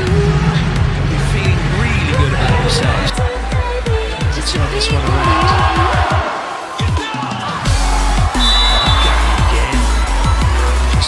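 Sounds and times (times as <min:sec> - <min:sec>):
electronic music with heavy bass beat: 0:00.0 - 0:11.0.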